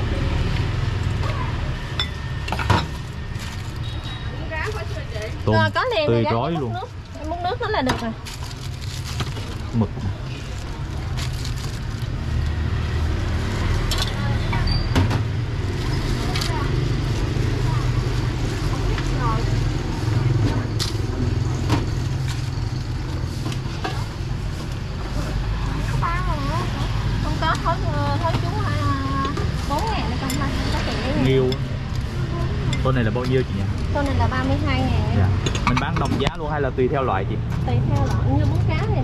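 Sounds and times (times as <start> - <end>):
bowls and utensils clinking: 1.9 - 3.0
vehicle engine running: 15.3 - 35.2.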